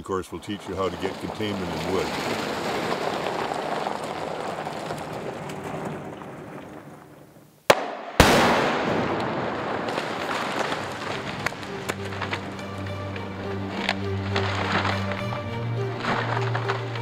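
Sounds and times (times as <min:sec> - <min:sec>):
debris falling: 0:00.3 - 0:17.0
sharp crack: 0:00.4 - 0:17.0
loud explosive blast: 0:07.7 - 0:11.4.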